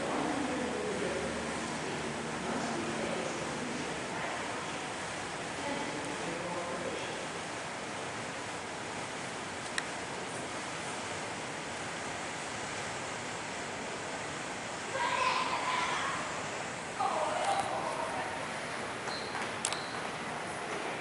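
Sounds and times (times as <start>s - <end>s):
distant voices: 0.0s - 8.7s, 13.6s - 21.0s.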